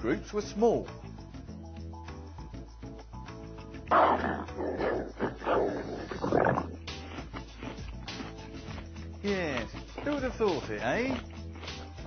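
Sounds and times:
background music: 0.0s - 12.0s
man growling and grunting: 4.0s - 6.8s.

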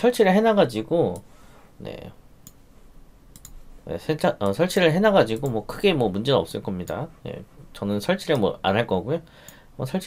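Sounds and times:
computer mouse clicks: 3.3s - 3.6s.

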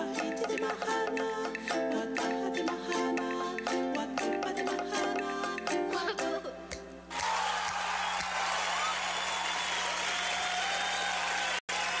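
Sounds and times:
applause: 7.1s - 12.0s.

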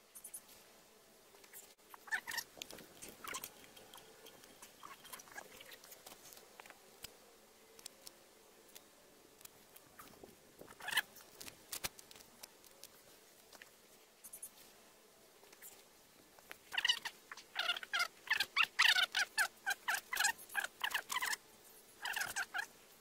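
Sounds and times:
faint clicks: 7.8s - 13.7s.

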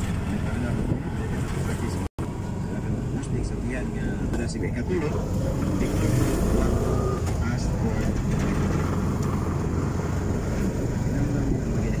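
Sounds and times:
road noise: 0.0s - 12.0s.

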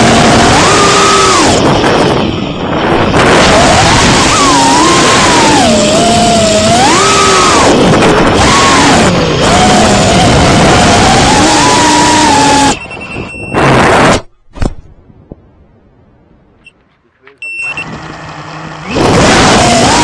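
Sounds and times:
drone propellers whining: 0.0s - 14.3s, 17.4s - 20.0s.

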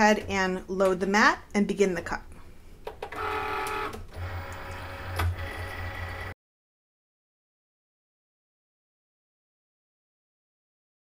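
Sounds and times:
cutting machine motors whirring: 3.1s - 6.4s.

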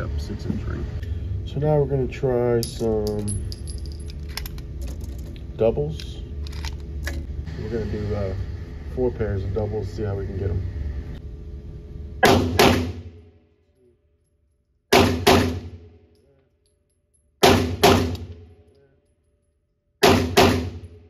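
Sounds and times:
pistol shots in indoor range: 12.2s - 21.0s.

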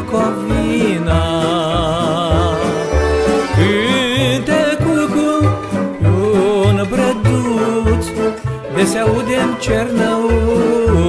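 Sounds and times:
violins playing melody with vibrato: 0.8s - 10.3s
low bass beat: 1.2s - 5.1s.

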